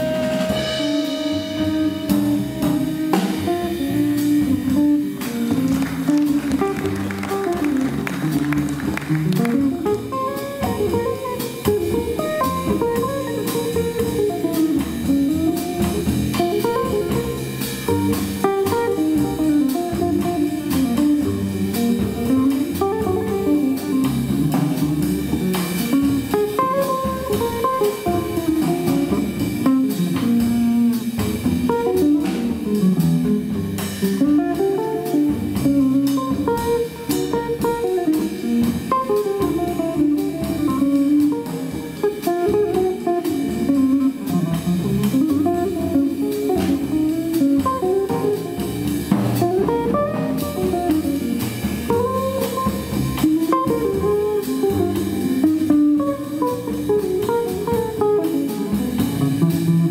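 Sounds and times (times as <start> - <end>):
jazz guitar single notes: 0.0 - 59.9
light drums: 0.0 - 59.9
plucked double bass: 0.0 - 59.9.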